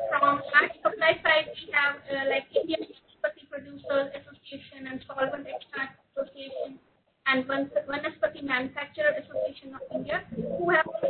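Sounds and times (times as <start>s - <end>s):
woman talking over video call: 0.0s - 11.0s.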